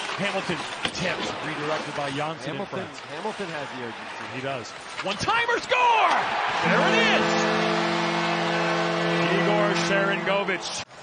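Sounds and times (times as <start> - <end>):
crowd noise: 1.2 - 11.0
goal horn chord: 6.5 - 10.9.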